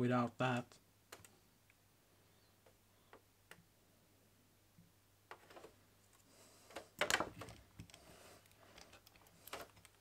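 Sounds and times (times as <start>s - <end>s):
faint clicks: 1.1s - 1.8s.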